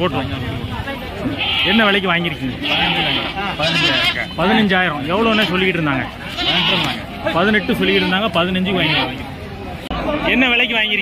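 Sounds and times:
crowd talking: 0.0 - 11.0
goat bleating: 1.2 - 9.4.

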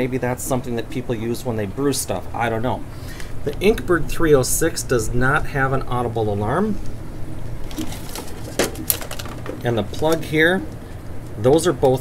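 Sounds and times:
hands rustling among cords: 7.6 - 11.4.

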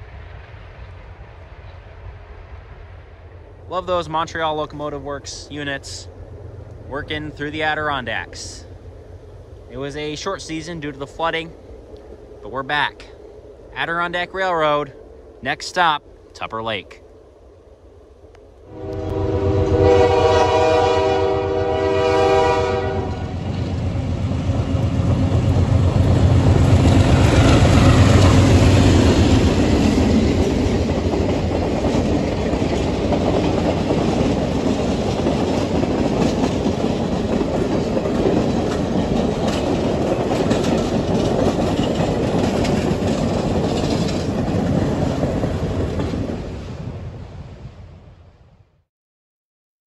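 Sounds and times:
diesel locomotive rumble: 0.0 - 48.0
train horn: 18.7 - 23.4
train coaches clattering over rails: 25.3 - 46.4.

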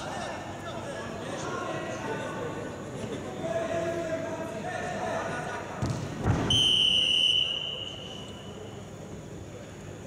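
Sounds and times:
whistle blown: 6.5 - 8.6.

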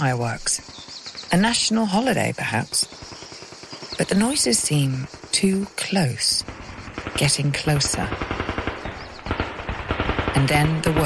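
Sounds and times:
rapid machine-gun fire: 2.8 - 5.6, 6.3 - 11.0.

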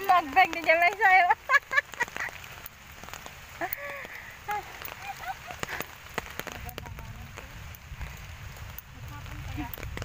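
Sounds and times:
raindrops tapping on umbrella: 0.0 - 10.0
steady rain: 0.0 - 10.0.

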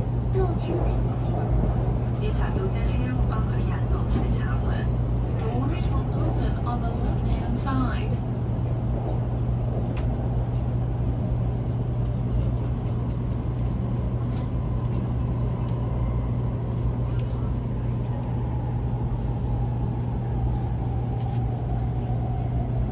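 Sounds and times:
passengers' voices: 0.0 - 22.9
train interior hum and rumble: 0.0 - 22.9.

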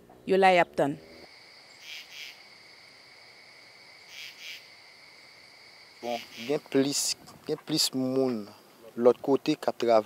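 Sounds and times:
insects chirring: 1.0 - 10.0.

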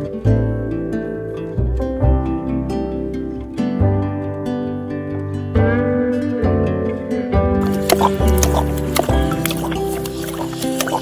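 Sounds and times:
instrumental background music: 0.0 - 11.0
tiger lapping water: 7.6 - 11.0.

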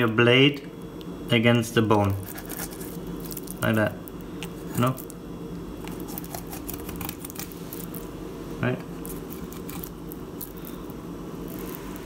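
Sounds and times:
knife scraping along fish bones: 2.2 - 3.0, 5.9 - 7.9, 9.1 - 10.8.

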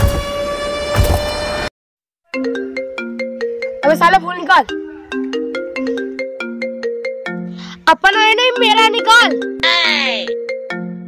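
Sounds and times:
marimba-like phone ringtone: 2.3 - 11.0.

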